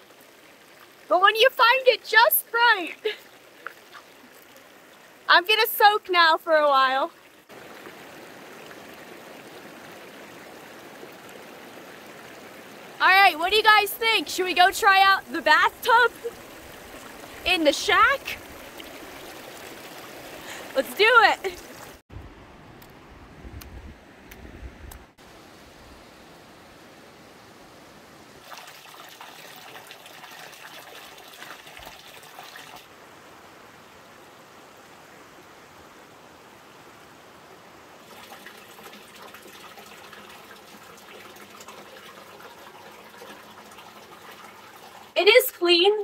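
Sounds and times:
running trickling water: 0:00.0 - 0:22.0, 0:28.3 - 0:33.1, 0:37.5 - 0:46.0.

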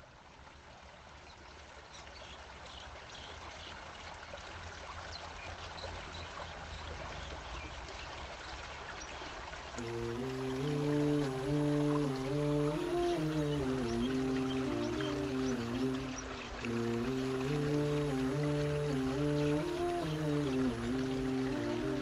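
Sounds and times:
water dripping: 0:01.6 - 0:22.0
person humming: 0:09.8 - 0:22.0
rain hissing: 0:09.8 - 0:22.0.

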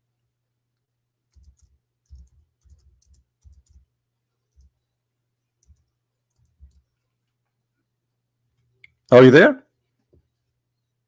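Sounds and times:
faint low hum: 0:00.0 - 0:11.0
computer keys clicking: 0:01.3 - 0:03.9, 0:05.6 - 0:07.0.

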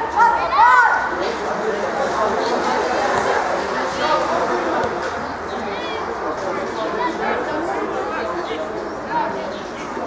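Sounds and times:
spectators and players shouting: 0:00.0 - 0:01.5.

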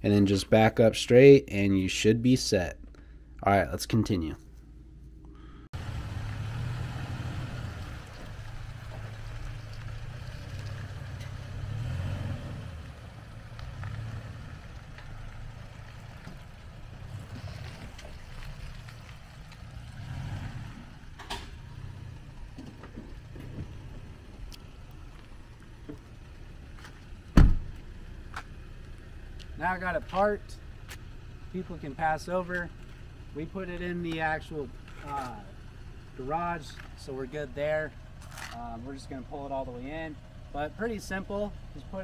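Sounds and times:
pickup truck engine rumbling: 0:05.2 - 0:42.0
loud thump: 0:27.3 - 0:27.8.

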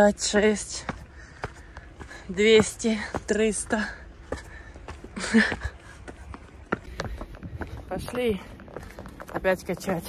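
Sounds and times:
footsteps on stone steps: 0:00.0 - 0:10.0.

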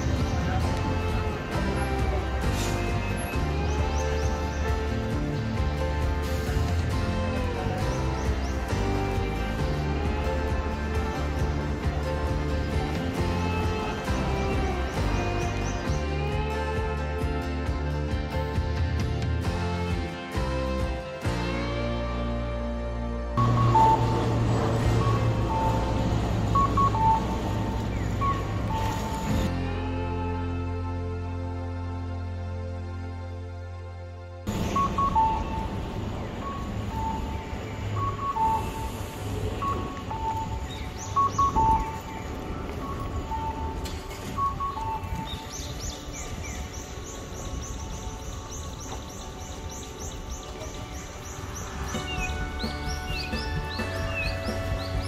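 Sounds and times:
background music: 0:00.0 - 0:55.0
low engine hum: 0:00.0 - 0:55.0
road traffic: 0:00.0 - 0:55.0
short beeps: 0:34.6 - 0:35.7.

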